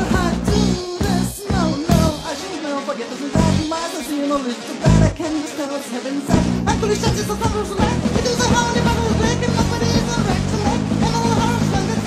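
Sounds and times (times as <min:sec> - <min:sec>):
bass guitar: 0:00.0 - 0:02.4, 0:03.3 - 0:03.8, 0:04.8 - 0:05.3, 0:06.3 - 0:12.0
drums: 0:00.0 - 0:12.0
melodic lead line: 0:00.0 - 0:12.0
rock band playing: 0:00.0 - 0:12.0.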